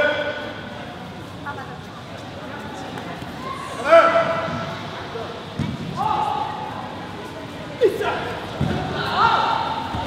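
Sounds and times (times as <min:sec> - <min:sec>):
murmur of voices in echoing hall: 0:00.0 - 0:10.0.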